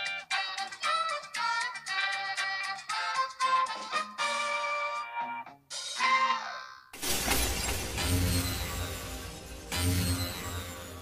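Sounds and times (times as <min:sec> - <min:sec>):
glass shattering: 0:07.0 - 0:10.9.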